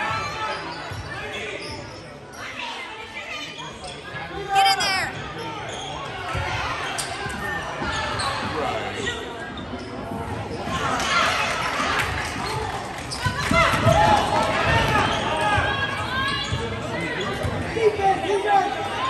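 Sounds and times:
voices echoing in hall: 0.0s - 19.0s.

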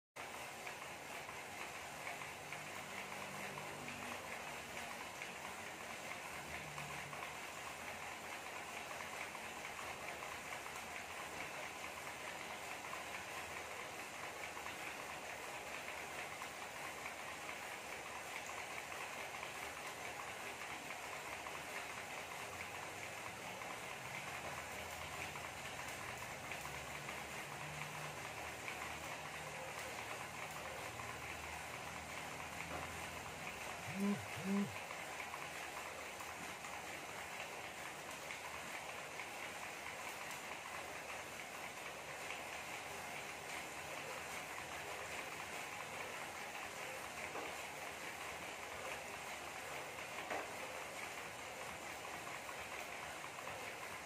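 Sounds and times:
bike tyre whirring on trainer: 0.2s - 54.0s.

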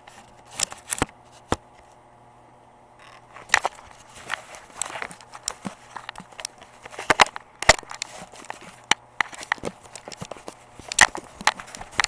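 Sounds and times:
camera handling clicks and knocks: 3.0s - 12.0s.

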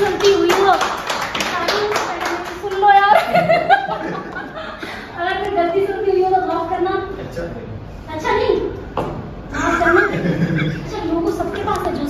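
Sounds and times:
hands clapping: 0.0s - 3.3s.

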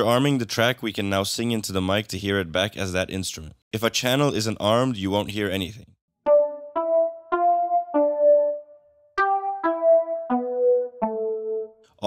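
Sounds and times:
electric piano synth melody: 6.3s - 11.9s.

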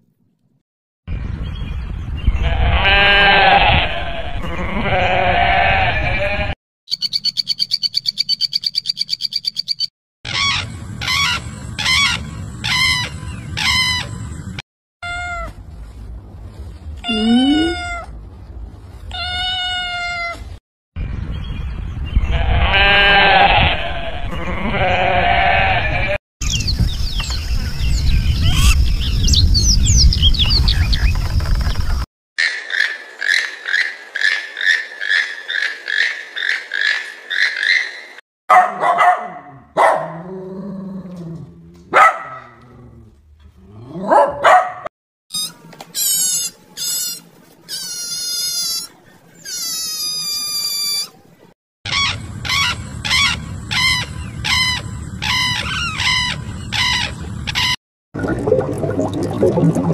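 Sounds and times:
kitten mewing: 17.0s - 18.1s.

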